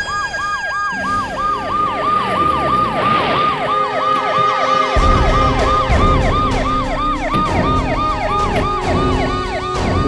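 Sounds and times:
police siren wailing: 0:00.0 - 0:10.0.

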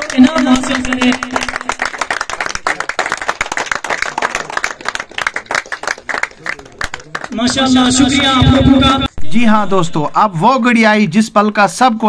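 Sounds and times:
crowd clapping: 0:00.0 - 0:09.0.

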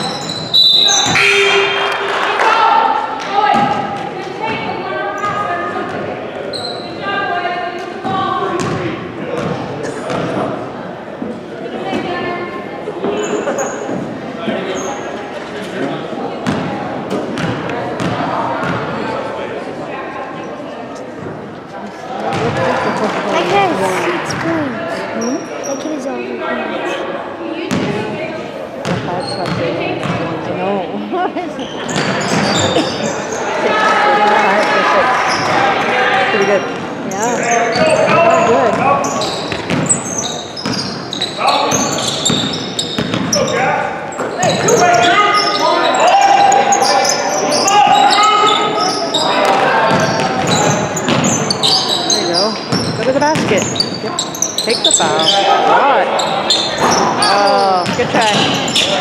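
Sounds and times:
sneakers squeaking: 0:00.0 - 0:02.0, 0:03.2 - 0:07.2, 0:07.8 - 0:10.6, 0:13.0 - 0:19.2, 0:20.4 - 0:26.1, 0:27.7 - 0:30.5, 0:31.4 - 0:59.0
people talking and calling out: 0:00.0 - 0:59.0
basketball bouncing on hardwood: 0:42.3 - 0:43.4, 0:52.7 - 0:53.8.

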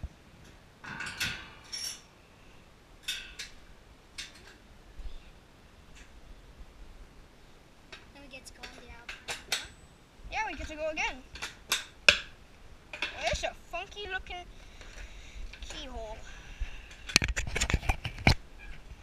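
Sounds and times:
metal clinks and clanks: 0:00.8 - 0:02.1.

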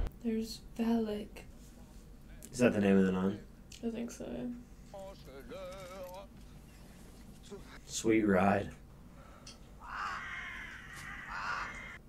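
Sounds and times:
crows cawing: 0:09.8 - 0:12.0.

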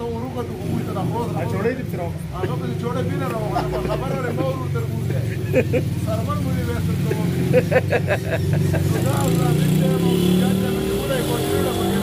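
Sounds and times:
man talking: 0:00.0 - 0:07.9, 0:08.7 - 0:12.0.

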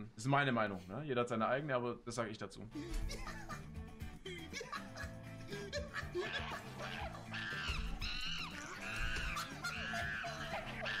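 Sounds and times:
high-pitched vocal cries: 0:05.8 - 0:11.0.

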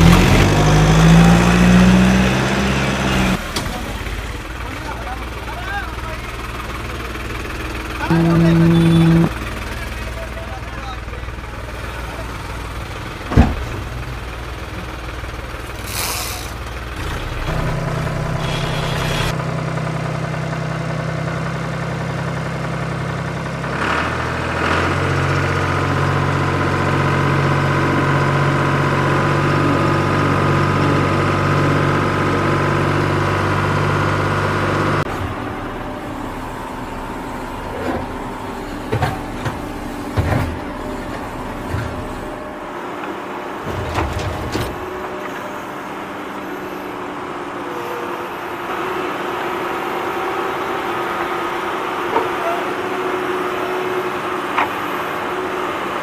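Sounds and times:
small motors humming: 0:08.0 - 0:09.4.

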